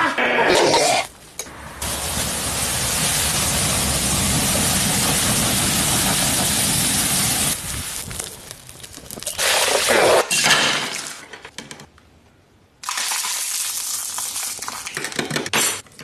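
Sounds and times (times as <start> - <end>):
fire burning with rushing noise: 1.5 - 9.9.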